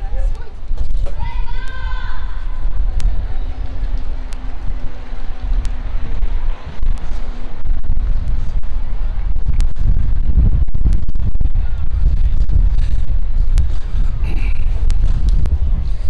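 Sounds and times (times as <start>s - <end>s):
faint voices: 0.0s - 9.7s
wind buffeting microphone: 0.0s - 16.0s.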